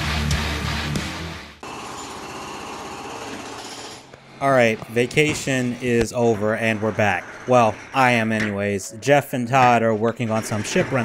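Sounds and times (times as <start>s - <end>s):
heavy metal guitar music: 0.0s - 1.6s.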